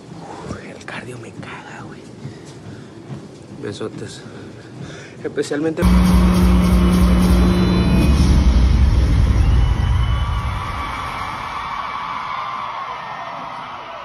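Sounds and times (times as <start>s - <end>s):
deep bass rumble over pa: 5.8s - 10.8s.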